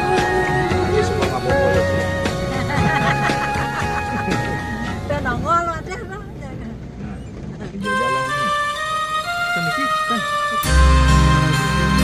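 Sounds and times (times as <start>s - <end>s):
car driving on gravel: 3.8s - 8.6s.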